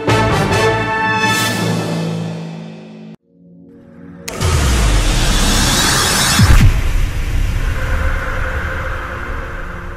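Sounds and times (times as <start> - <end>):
low rumbling drone: 4.2 - 9.9.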